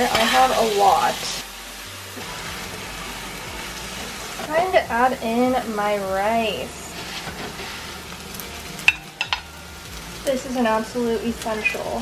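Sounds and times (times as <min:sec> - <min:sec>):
food sizzling in a frying pan: 0:00.0 - 0:12.0.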